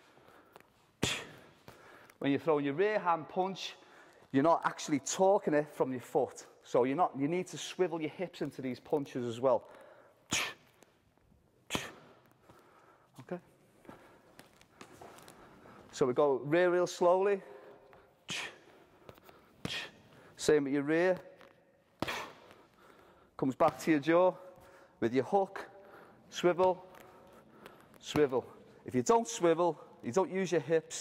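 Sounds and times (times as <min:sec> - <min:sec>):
footsteps on gym mats: 0:12.4 - 0:16.0.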